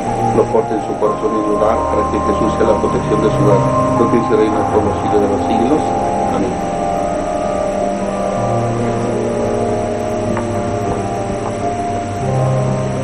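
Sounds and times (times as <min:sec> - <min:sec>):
low bass note: 0:00.0 - 0:13.0
soft held music chords: 0:00.0 - 0:13.0.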